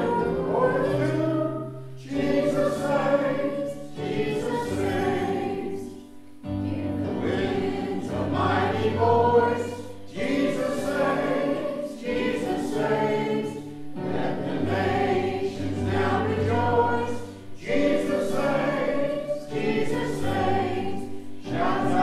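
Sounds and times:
choir singing a hymn: 0:00.0 - 0:22.0.

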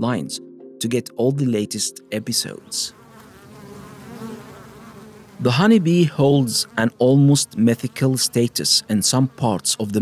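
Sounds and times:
honeybees buzzing: 0:01.2 - 0:10.0.

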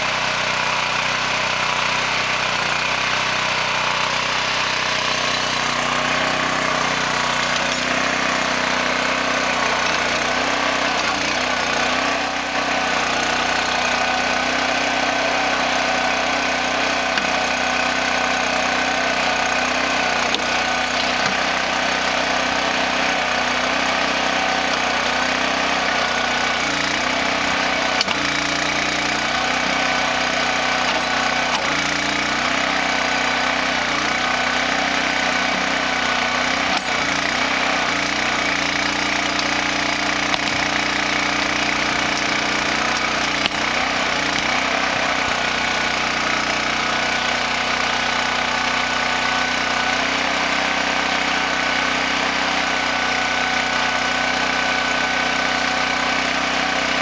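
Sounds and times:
small engine running: 0:00.0 - 0:57.0.

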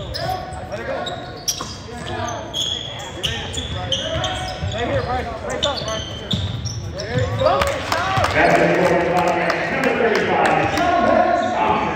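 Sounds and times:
shoes squeaking on hardwood floor: 0:00.0 - 0:08.5.

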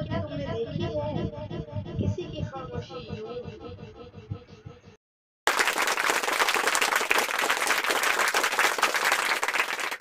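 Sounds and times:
crowd applause: 0:05.5 - 0:10.0.

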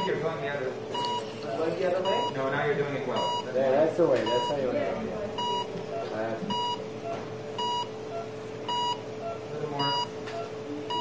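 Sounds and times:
steady hum: 0:00.0 - 0:11.0
heart monitor beeps: 0:01.0 - 0:01.4, 0:03.2 - 0:03.5, 0:04.2 - 0:04.6, 0:05.4 - 0:11.0.

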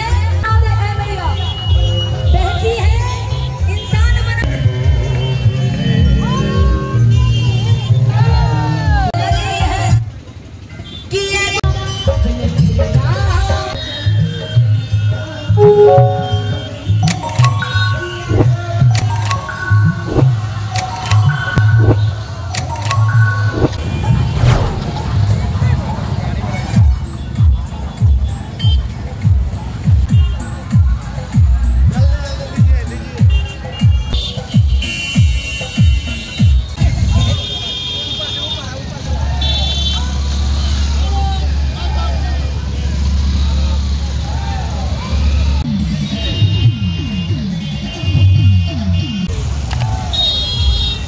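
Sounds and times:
motorcycles rumbling: 0:23.5 - 0:30.0.

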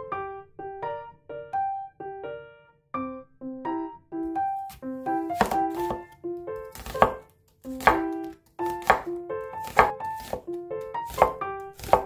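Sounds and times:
gentle piano music: 0:00.0 - 0:12.0
cleaver chopping on wooden board: 0:05.4 - 0:06.1, 0:06.7 - 0:10.5, 0:11.1 - 0:12.0.

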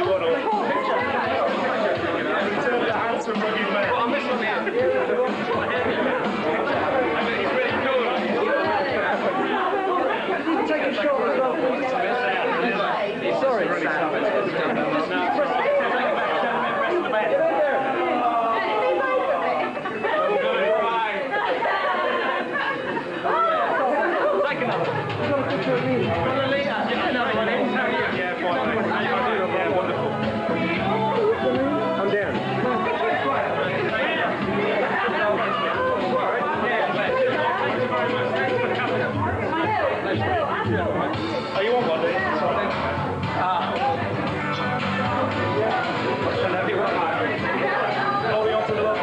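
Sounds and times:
people chattering: 0:00.0 - 0:49.0.

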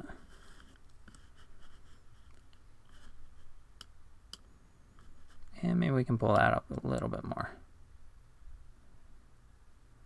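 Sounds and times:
mouse sliding across desk: 0:00.1 - 0:03.6.

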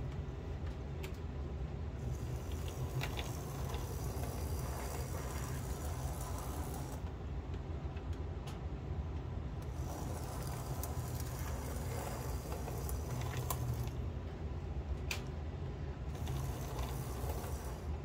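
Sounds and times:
model locomotive motor hum: 0:02.0 - 0:07.1, 0:09.6 - 0:14.1, 0:16.0 - 0:18.0.

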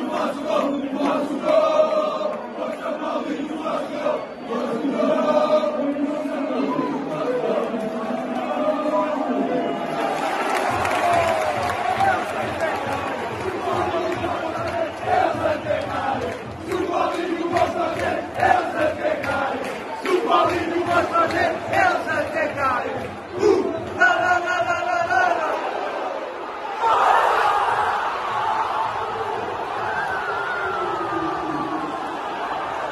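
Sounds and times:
football crowd chanting: 0:00.0 - 0:32.9.

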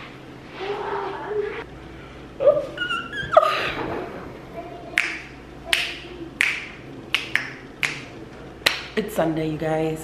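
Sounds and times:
finger snaps: 0:05.0 - 0:08.9.

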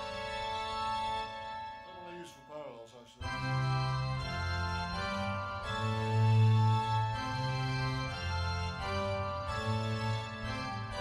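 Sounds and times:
keyboard organ chords: 0:00.0 - 0:11.0.

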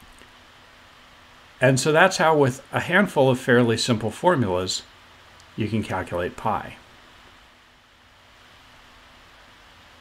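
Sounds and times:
faint low hum: 0:00.0 - 0:10.0
faint steady hiss: 0:00.0 - 0:10.0.

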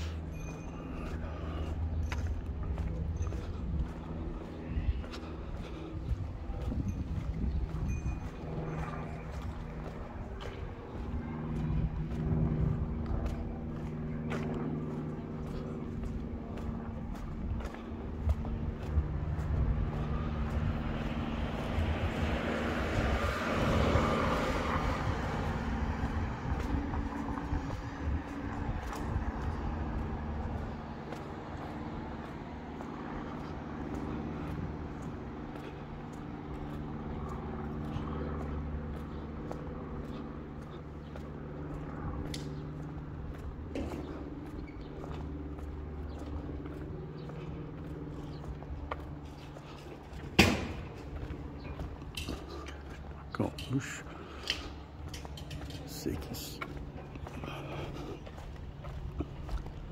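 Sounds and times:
vehicle engine hum: 0:00.0 - 0:59.9
vehicle passing by: 0:00.0 - 0:59.9.

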